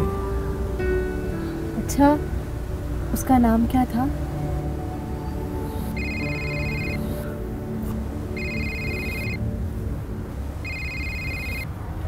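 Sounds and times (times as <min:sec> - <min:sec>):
mobile phone ringtone: 0:05.9 - 0:07.3, 0:08.4 - 0:09.4, 0:10.6 - 0:11.7.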